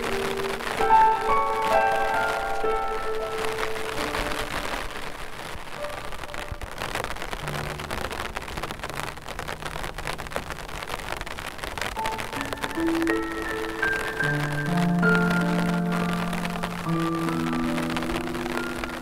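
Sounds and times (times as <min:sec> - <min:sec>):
rain pattering: 0:00.0 - 0:19.0
slow soft piano: 0:00.0 - 0:19.0.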